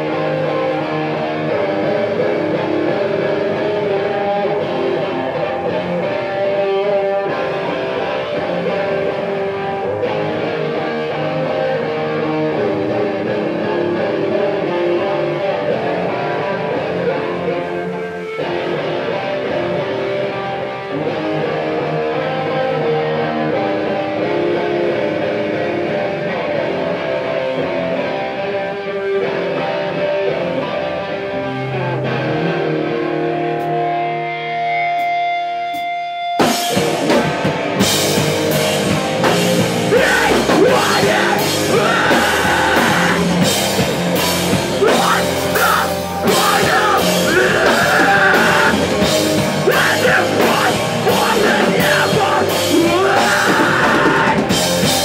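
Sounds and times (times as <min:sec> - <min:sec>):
electric guitar: 0:00.0 - 0:55.0
full band playing: 0:00.0 - 0:55.0
drums crashing: 0:36.4 - 0:55.0.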